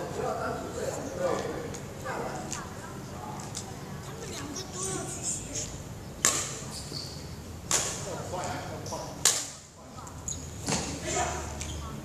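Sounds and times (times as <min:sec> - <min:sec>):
racket hitting shuttlecock: 0:06.2 - 0:06.7, 0:07.7 - 0:08.1, 0:09.2 - 0:09.6.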